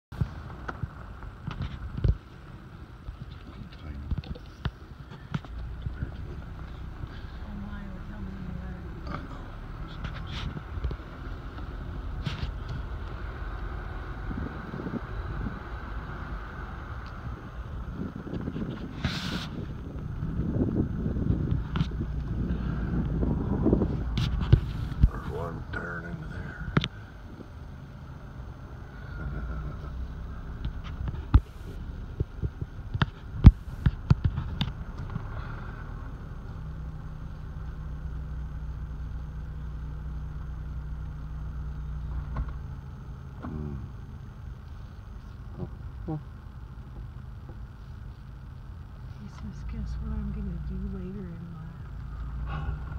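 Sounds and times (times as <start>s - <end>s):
car engine and road hum: 0.0s - 52.9s.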